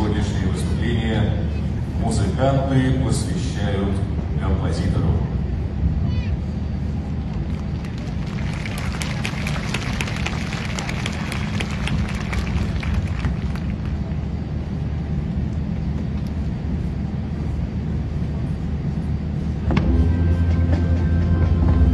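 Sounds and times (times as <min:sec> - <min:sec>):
low crowd murmur: 0:00.0 - 0:21.9
audience applauding: 0:07.4 - 0:14.2
music: 0:19.6 - 0:21.9.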